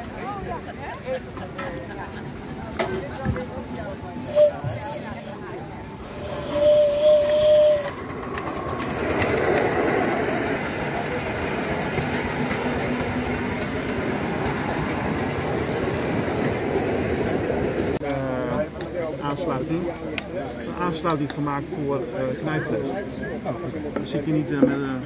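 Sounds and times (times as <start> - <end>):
miniature train rumbling on rails: 0.0 - 25.0
steam locomotive whistle blast: 4.2 - 8.5.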